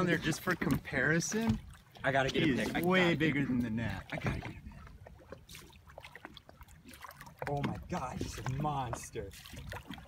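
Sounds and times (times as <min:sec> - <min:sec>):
water splashing and lapping: 0:00.0 - 0:10.0
small clicks and drips: 0:03.9 - 0:10.0.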